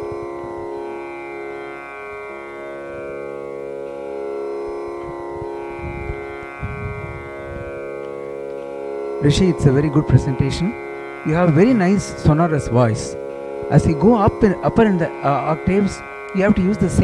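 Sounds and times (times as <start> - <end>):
electronic tanpura drone: 0.0 - 17.0
soft low bumps: 5.0 - 8.5.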